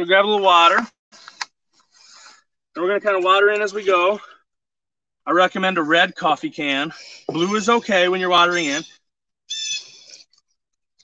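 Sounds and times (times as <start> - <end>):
high-pitched animal cry: 9.5 - 10.0.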